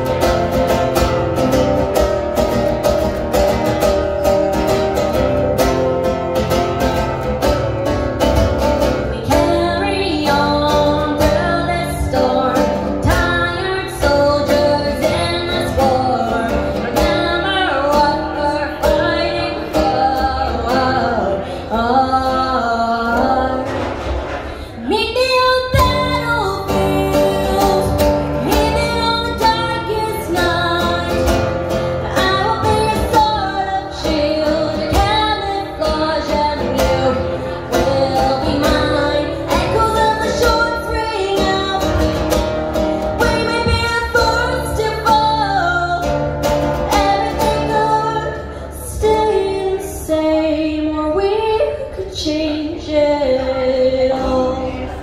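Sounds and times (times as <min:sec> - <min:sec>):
nylon-string guitar strumming: 0:00.0 - 0:50.5
girl singing: 0:08.5 - 0:24.0, 0:24.8 - 0:55.0.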